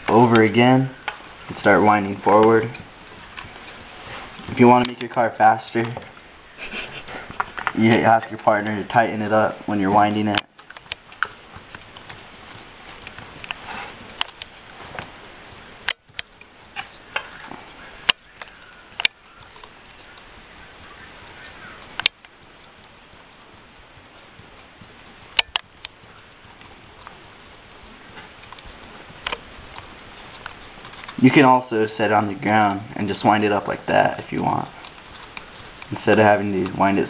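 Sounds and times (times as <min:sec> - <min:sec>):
steady hiss: 0:00.0 - 0:37.0
small plastic and wooden clicks: 0:10.3 - 0:15.1, 0:15.8 - 0:20.4, 0:21.2 - 0:23.0, 0:25.3 - 0:27.2.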